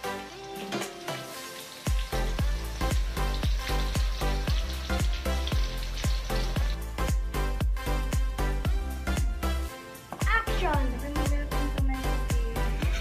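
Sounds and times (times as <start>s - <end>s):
tofu deep-frying in oil: 0.0s - 9.7s, 10.8s - 13.0s
music with heavy beat: 2.0s - 9.5s.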